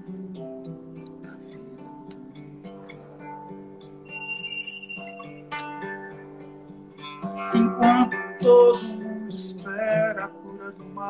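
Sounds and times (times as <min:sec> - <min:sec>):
acoustic guitar plucked notes: 0:00.0 - 0:11.0.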